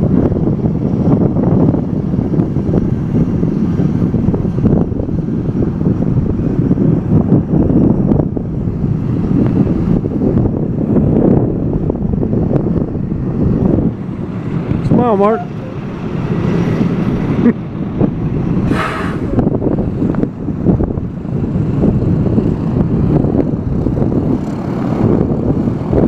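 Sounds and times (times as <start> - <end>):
airplane engine running: 0.0 - 26.0
wind buffeting microphone: 0.0 - 26.0.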